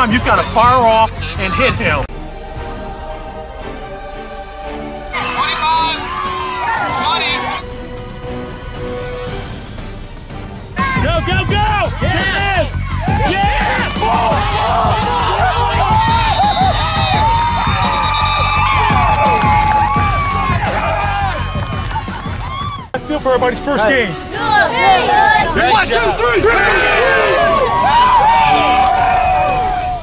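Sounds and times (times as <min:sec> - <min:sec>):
background music with steady beat: 0:00.0 - 0:30.0
young voices shouting and cheering: 0:05.1 - 0:07.6, 0:10.8 - 0:22.9, 0:24.2 - 0:30.0.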